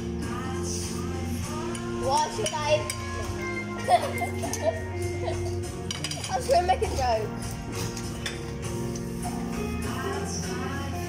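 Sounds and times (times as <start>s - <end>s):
background music with bass notes: 0.0s - 11.0s
cutlery clinking on plates: 5.5s - 6.6s, 7.8s - 8.6s.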